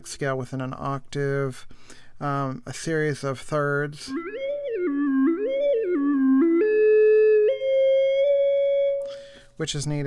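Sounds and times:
synthesized tone stepping in thirds: 0:04.1 - 0:09.2.

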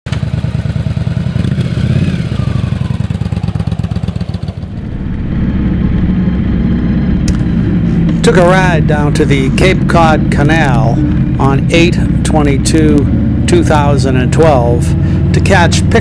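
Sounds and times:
motorcycle engine pulling away: 0:00.1 - 0:16.0.

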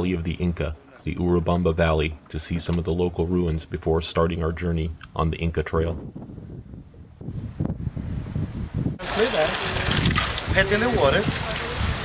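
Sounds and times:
man talking: 0:00.0 - 0:06.0, 0:10.5 - 0:11.7
wind rumble on microphone: 0:04.3 - 0:12.0
water running and splashing: 0:09.0 - 0:12.0.

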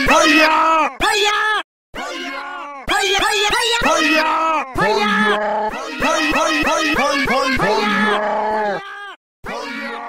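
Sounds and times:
person shouting: 0:00.1 - 0:10.0.

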